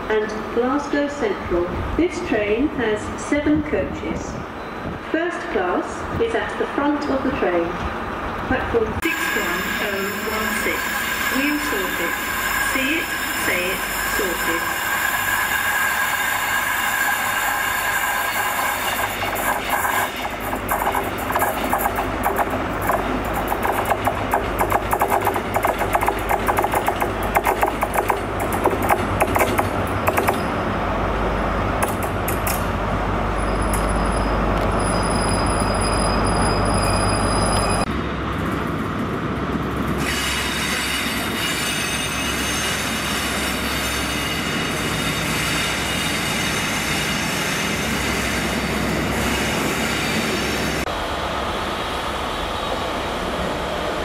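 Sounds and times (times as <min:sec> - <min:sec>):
diesel train running: 0:00.0 - 0:54.0
wheels clicking over rail joints: 0:19.1 - 0:30.5
high wheel squeal: 0:33.3 - 0:37.9, 0:40.0 - 0:50.8.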